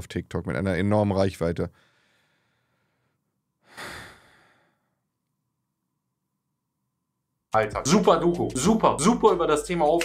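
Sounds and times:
man sighing: 3.6s - 4.8s.

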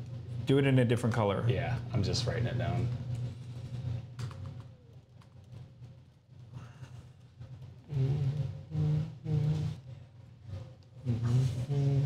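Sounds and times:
laptop keyboard typing: 4.2s - 5.6s
man humming: 7.8s - 9.9s, 11.0s - 12.0s.

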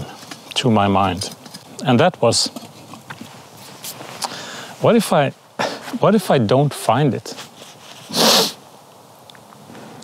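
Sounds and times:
wood fire crackling: 0.0s - 10.0s
man's sharp breath: 4.2s - 4.8s.

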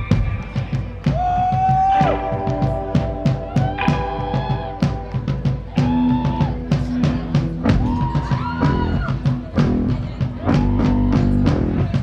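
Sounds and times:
bass guitar: 0.0s - 12.0s
drum kit beating: 0.0s - 12.0s
rock band playing: 0.0s - 12.0s.

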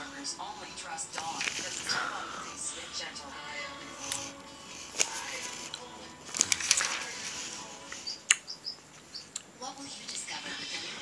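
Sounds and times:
paper pages flipping: 1.2s - 2.0s, 4.0s - 8.1s
high bird-like chirps: 8.0s - 9.4s.

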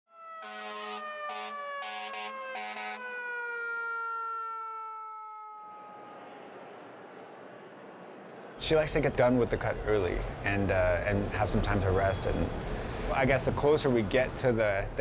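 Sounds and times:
fire truck siren winding down: 0.1s - 6.4s
fire truck horn blasts: 0.2s - 3.2s
street traffic: 0.4s - 15.0s.

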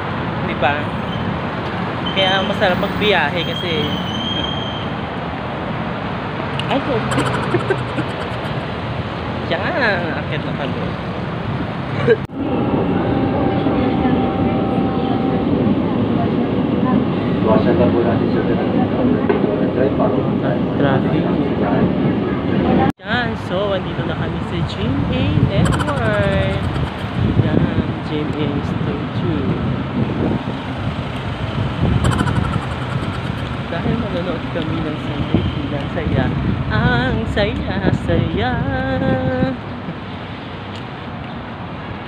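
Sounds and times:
road traffic rumble: 0.0s - 19.6s, 20.2s - 42.0s
wind on microphone: 24.5s - 39.7s.

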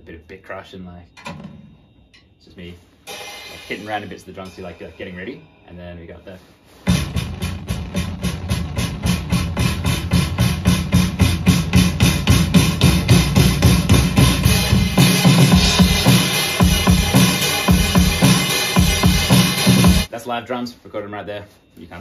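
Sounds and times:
bass: 2.4s - 20.1s
drum kit playing fast beat: 3.1s - 5.4s, 6.8s - 20.1s.

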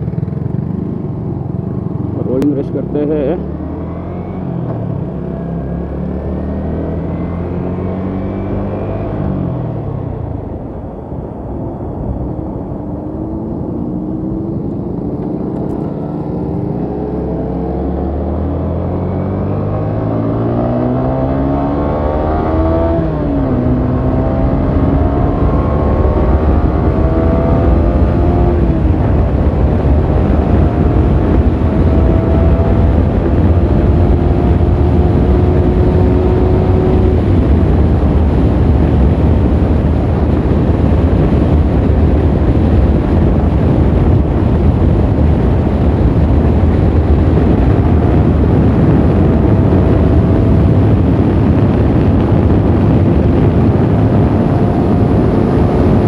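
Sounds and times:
motorcycle engine accelerating: 0.0s - 56.0s
wind noise on microphone: 0.0s - 56.0s.

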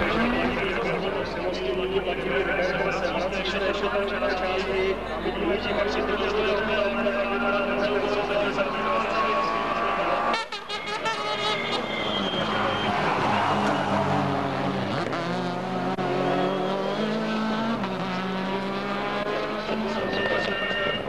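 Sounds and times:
rally car engine revving: 0.0s - 21.0s.

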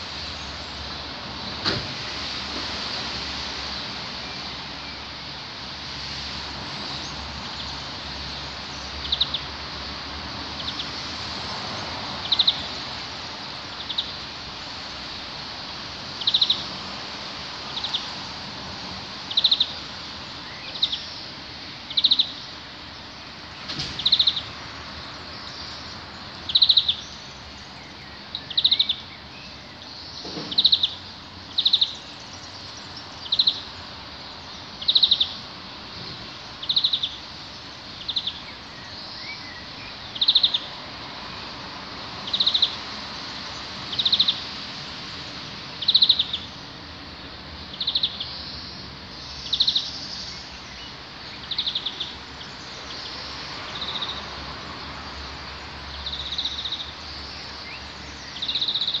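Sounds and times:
steady background hiss: 0.0s - 59.0s
bird pulsed call: 19.3s - 19.8s, 21.9s - 22.5s, 24.0s - 24.5s, 26.5s - 32.5s, 33.2s - 33.7s, 34.4s - 35.4s, 36.6s - 37.3s, 37.9s - 40.7s, 45.8s - 46.6s, 47.7s - 54.3s, 56.0s - 59.0s.

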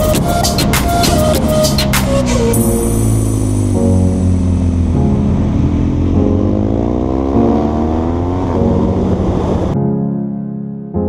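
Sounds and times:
motorcycle engine revving: 0.0s - 9.8s.

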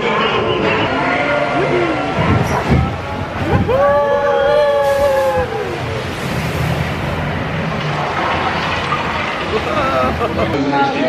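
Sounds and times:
boat rushing on water: 0.0s - 11.0s.

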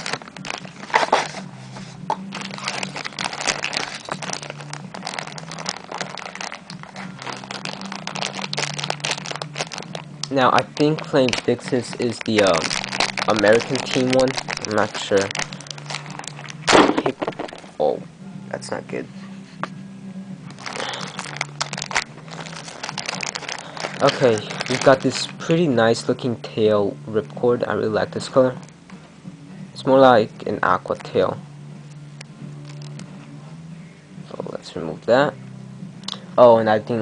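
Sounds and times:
plastic packaging crinkling: 0.0s - 1.4s, 2.3s - 17.8s, 20.6s - 25.6s, 32.7s - 33.0s
low steady hum: 0.0s - 37.0s.

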